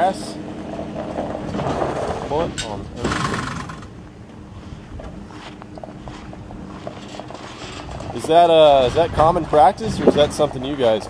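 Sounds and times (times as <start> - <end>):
steady low hum: 0.0 - 11.0
boat hull scraping off rollers: 0.9 - 4.0, 6.1 - 11.0.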